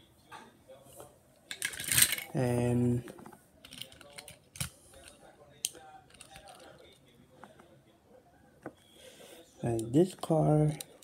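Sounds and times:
toy cars clicking: 1.5 - 2.4, 3.6 - 7.0.

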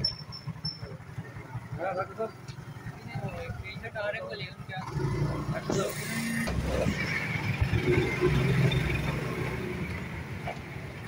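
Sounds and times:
motorcycle engines running: 0.0 - 11.0.

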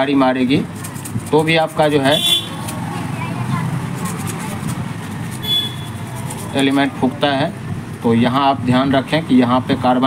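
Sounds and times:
road traffic rumble: 0.0 - 10.0
sandpaper rubbing on metal: 0.7 - 2.8, 3.8 - 6.9
short high horn toots: 5.4 - 6.0.

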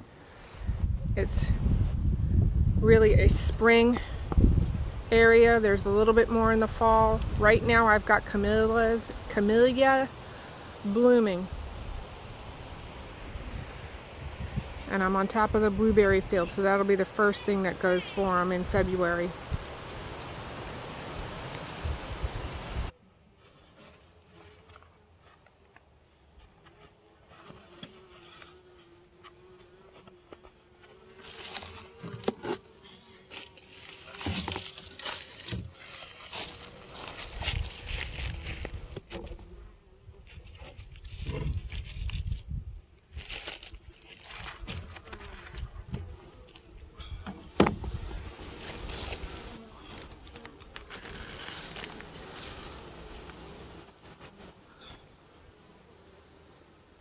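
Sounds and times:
bees buzzing: 2.7 - 41.8, 43.2 - 57.0
hive box scraping: 26.4 - 42.4, 43.2 - 55.1
sharp knock on hive: 47.2 - 48.1.

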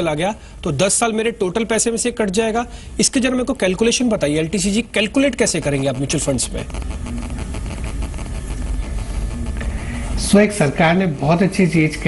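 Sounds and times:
low rumble with hum and hiss: 0.0 - 12.0.

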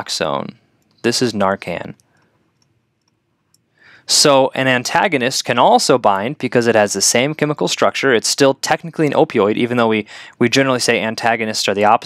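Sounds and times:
person speaking: 0.0 - 2.1, 4.0 - 12.0
short breath: 3.7 - 4.1, 10.1 - 10.4.

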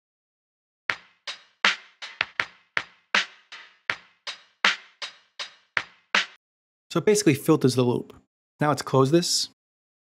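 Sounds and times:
filtered percussion loop: 0.9 - 6.4.

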